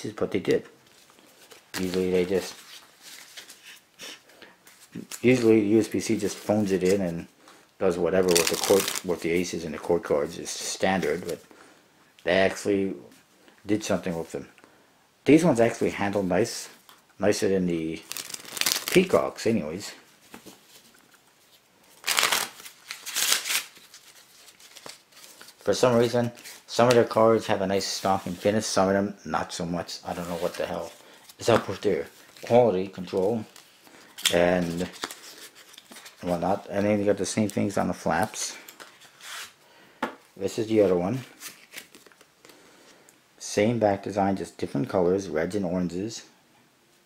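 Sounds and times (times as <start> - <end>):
playing cards riffle shuffling: 8.2 - 9.2, 18.0 - 19.2, 20.2 - 27.2.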